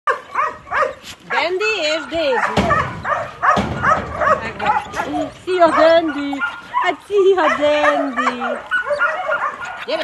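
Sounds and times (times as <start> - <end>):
dog yipping: 0.1 - 1.4, 2.1 - 10.0.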